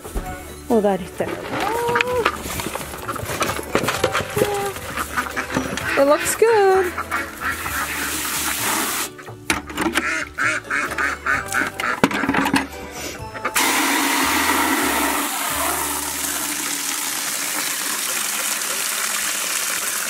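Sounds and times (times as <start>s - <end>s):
hose spraying into plastic bucket: 7.1s - 9.2s, 13.6s - 20.0s.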